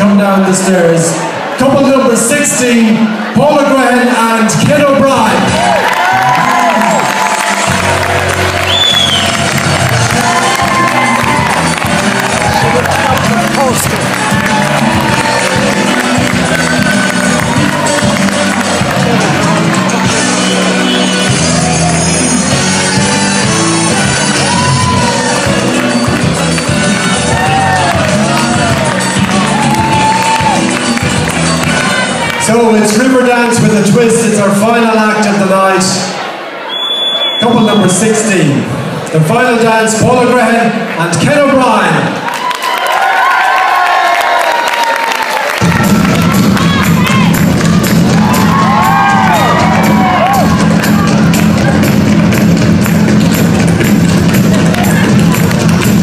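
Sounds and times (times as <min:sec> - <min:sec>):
music over sound system: 0:04.5 - 0:35.3, 0:45.5 - 0:56.0
audience cheering and clapping: 0:04.8 - 0:33.3, 0:40.9 - 0:56.0.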